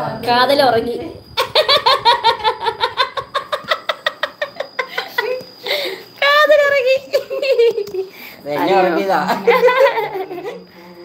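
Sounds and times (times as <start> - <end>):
woman laughing heartily: 1.4 - 5.9.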